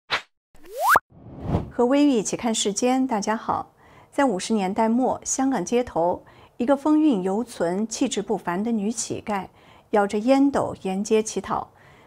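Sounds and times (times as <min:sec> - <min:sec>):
whoosh: 0:00.1 - 0:01.8
rising tone: 0:00.6 - 0:01.7
woman speaking: 0:01.8 - 0:11.7.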